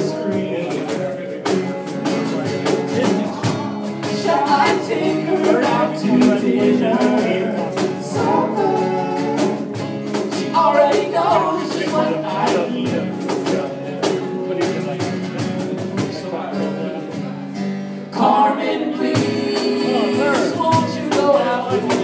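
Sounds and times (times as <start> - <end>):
person singing: 0.0 - 1.6, 3.0 - 14.3, 18.1 - 22.0
acoustic guitar strumming: 0.0 - 22.0.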